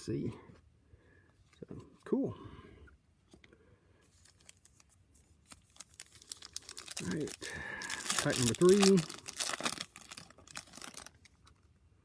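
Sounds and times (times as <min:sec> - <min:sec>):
foil wrapper crinkling and tearing: 0:04.2 - 0:11.7.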